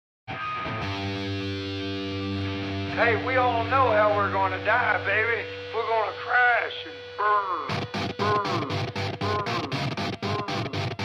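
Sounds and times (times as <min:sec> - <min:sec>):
electric guitar chord ringing: 0:00.3 - 0:11.0.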